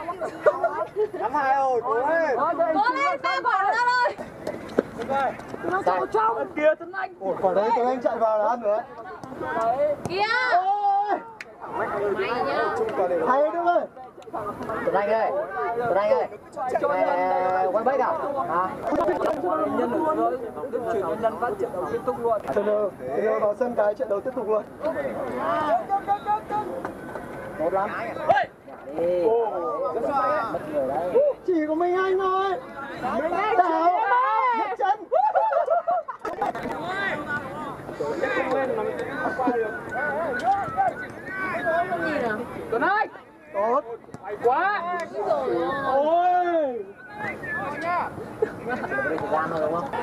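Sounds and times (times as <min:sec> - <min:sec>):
players calling out: 0:24.8 - 0:50.0.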